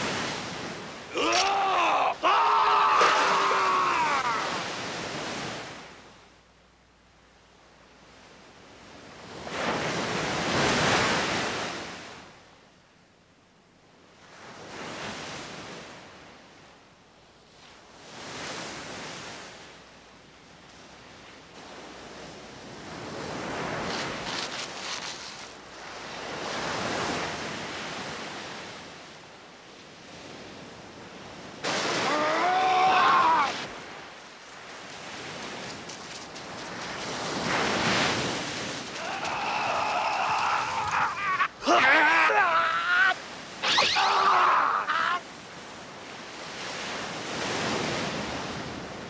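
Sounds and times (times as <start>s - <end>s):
sea surf breaking on beach: 0.0s - 6.1s, 8.8s - 12.3s, 20.7s - 49.0s
sharp cry: 39.0s - 45.2s.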